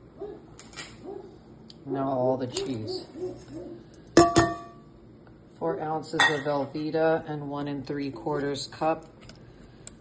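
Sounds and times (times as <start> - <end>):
utensil clanking on cookware: 4.2 - 4.8, 6.1 - 6.7.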